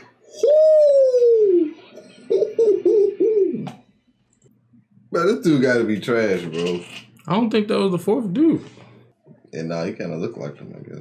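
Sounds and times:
person's voice ooh and hoots: 0:00.2 - 0:03.7.

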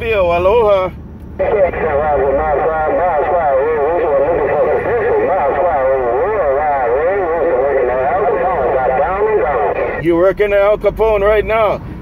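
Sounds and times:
low vehicle rumble: 0:00.0 - 0:12.0
wavering voice over radio speaker: 0:01.4 - 0:10.3.

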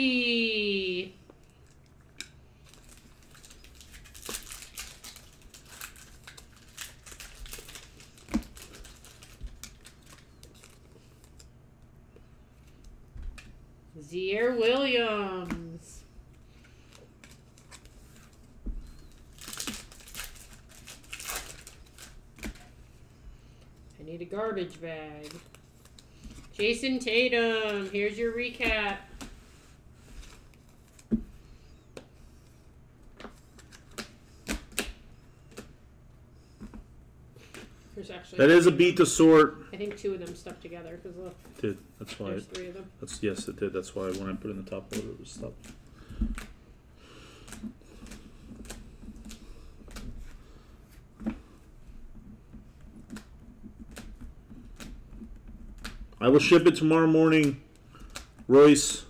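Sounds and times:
cards clicking and tapping: 0:33.2 - 0:35.8, 0:41.6 - 0:46.6.

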